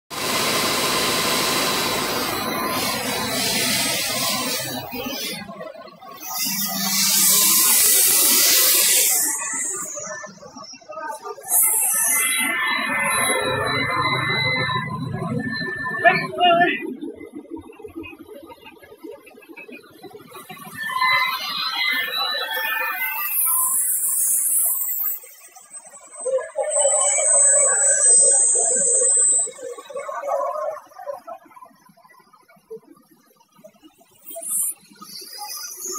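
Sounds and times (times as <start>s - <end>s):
extrusion machinery running: 0.1s - 10.2s, 26.7s - 30.0s
steady high whine: 0.1s - 20.8s, 22.6s - 31.5s
steam hissing: 0.2s - 5.5s, 6.1s - 10.1s, 26.9s - 29.9s
low machine hum: 0.2s - 5.8s.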